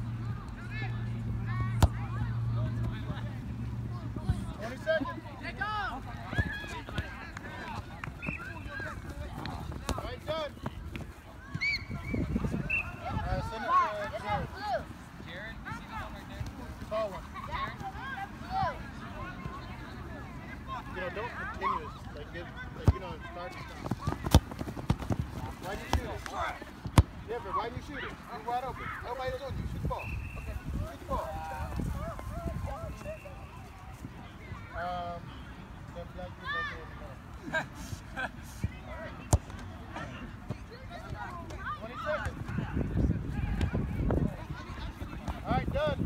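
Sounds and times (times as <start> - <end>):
ball kicked with sharp smack: 1.7 - 2.0, 23.8 - 25.2.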